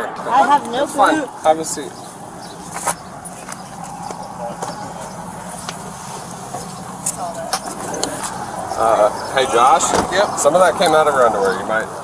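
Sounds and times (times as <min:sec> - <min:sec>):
faint voices: 0:00.0 - 0:12.0
patrol car hum: 0:00.0 - 0:12.0.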